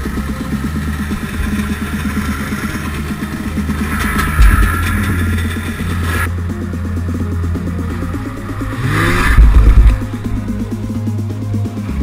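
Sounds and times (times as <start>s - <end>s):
electronic music with steady beat: 0.0s - 12.0s
snowmobile engine revving: 0.0s - 12.0s.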